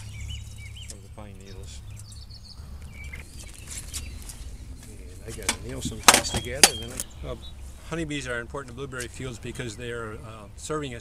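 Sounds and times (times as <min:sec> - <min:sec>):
bird chirps: 0:00.0 - 0:08.0
steady low rumble: 0:00.0 - 0:11.0.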